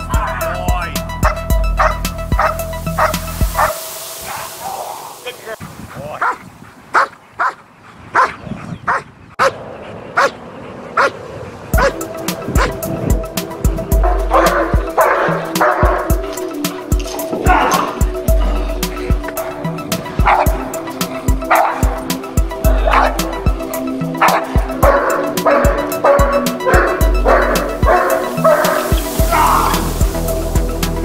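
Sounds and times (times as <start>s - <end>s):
background music: 0.0s - 5.6s, 11.8s - 31.0s
dog barking: 1.2s - 3.8s, 6.2s - 9.6s, 10.2s - 10.4s, 11.0s - 11.2s, 11.8s - 12.8s, 14.0s - 16.2s, 20.2s - 20.6s, 21.4s - 22.1s, 24.2s - 29.0s.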